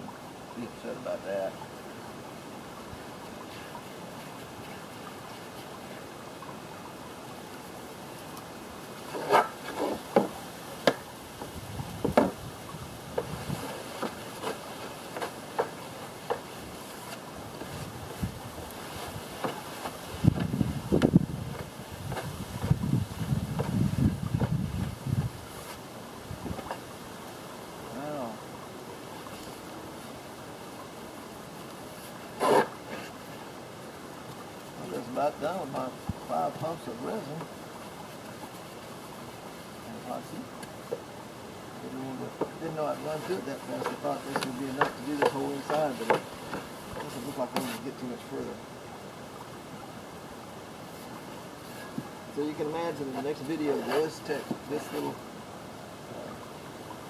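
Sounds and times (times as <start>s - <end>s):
light clicks taps and scrapes: 42.4s - 47.9s.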